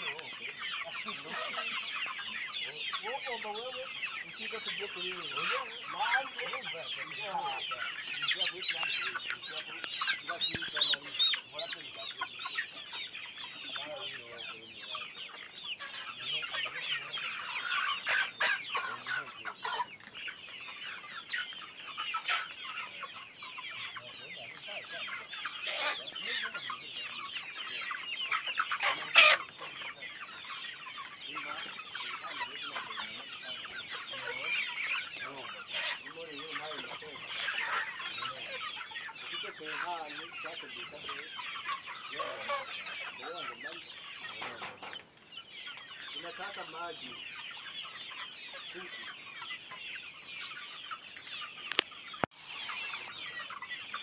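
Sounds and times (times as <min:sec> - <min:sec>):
chickens clucking: 0:00.0 - 0:54.0.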